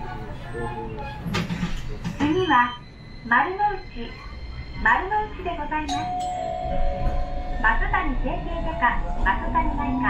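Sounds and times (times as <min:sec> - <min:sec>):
recorded onboard announcement: 0:00.0 - 0:10.0
tram rumbling on track: 0:00.0 - 0:10.0.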